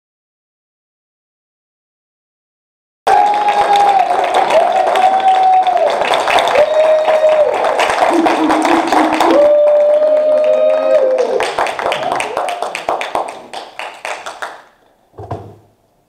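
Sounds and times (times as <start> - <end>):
long held vocal cheers: 3.1 - 12.6
audience clapping: 3.1 - 14.8.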